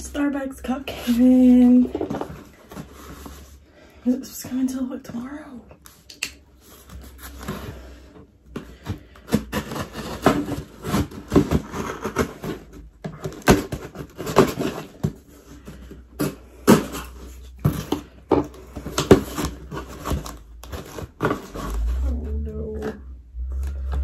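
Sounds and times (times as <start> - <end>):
low rumble: 21.6 - 24.0.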